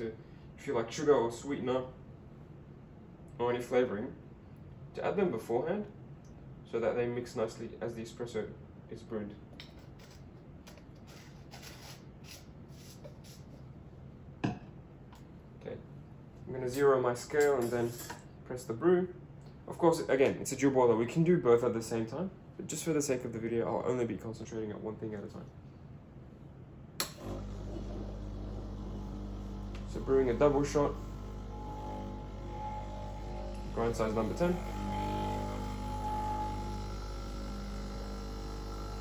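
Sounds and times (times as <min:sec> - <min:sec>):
low steady hum: 0:13.8 - 0:39.0
espresso machine pump humming: 0:27.2 - 0:39.0.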